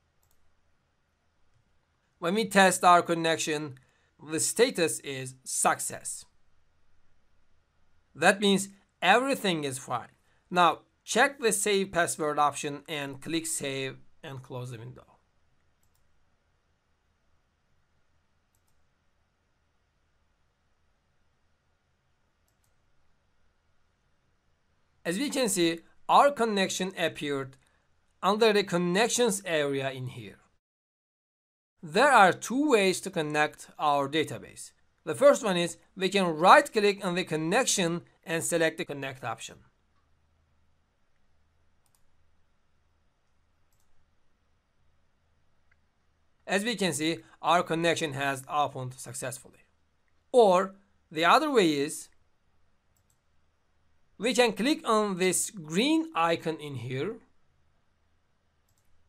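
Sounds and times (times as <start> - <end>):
computer mouse clicks: 0.2 - 0.5, 15.6 - 16.2, 18.5 - 18.9, 22.4 - 22.9, 41.1 - 42.2, 43.2 - 44.1, 52.9 - 53.3, 58.6 - 59.0.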